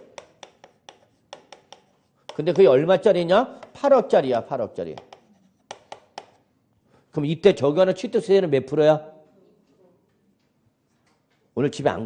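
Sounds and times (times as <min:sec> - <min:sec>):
chalk scratching on chalkboard: 0:00.0 - 0:02.7, 0:04.7 - 0:06.4
chalk tapping on chalkboard: 0:00.0 - 0:02.7, 0:03.5 - 0:03.9, 0:04.7 - 0:06.4.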